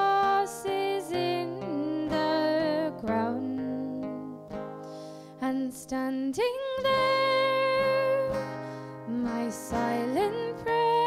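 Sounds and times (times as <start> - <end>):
acoustic guitar: 0.0 - 11.0
woman singing folk ballad: 0.0 - 11.0.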